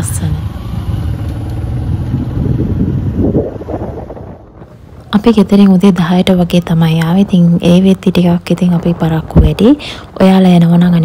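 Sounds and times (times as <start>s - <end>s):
vehicle road and engine rumble: 0.0s - 11.0s
wind rushing over microphone: 0.4s - 11.0s.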